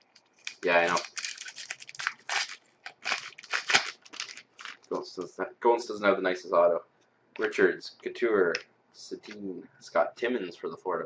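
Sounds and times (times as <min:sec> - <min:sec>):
plastic wrapper crinkling: 0:00.0 - 0:05.0.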